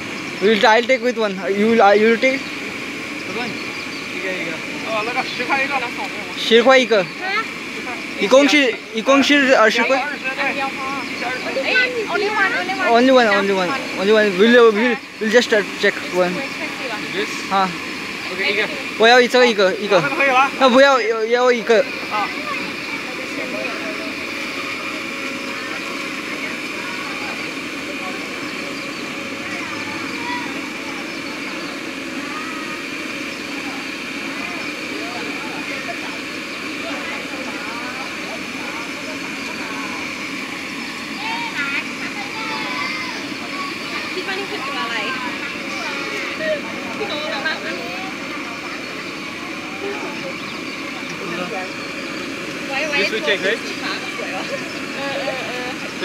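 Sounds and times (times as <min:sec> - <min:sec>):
voices chattering: 0:00.0 - 0:56.0.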